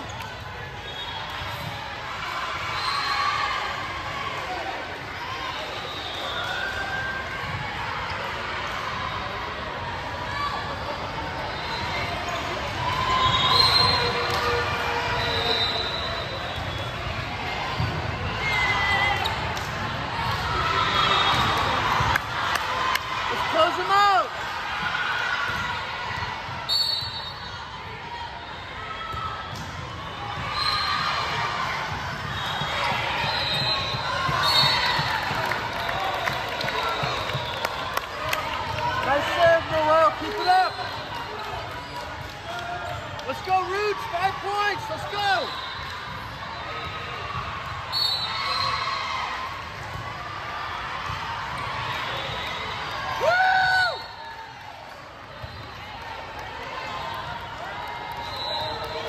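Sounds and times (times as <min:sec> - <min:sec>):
sneaker squeaks on hardwood: 0:32.2 - 0:35.1.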